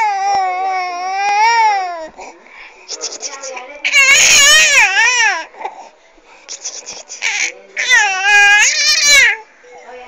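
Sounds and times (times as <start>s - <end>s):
infant squealing: 3.9s - 5.5s, 6.8s - 9.4s.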